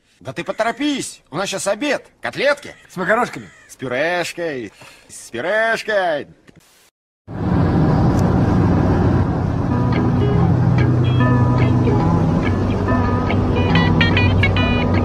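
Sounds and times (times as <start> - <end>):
car road and engine noise: 7.3 - 15.0
music playing: 9.6 - 15.0.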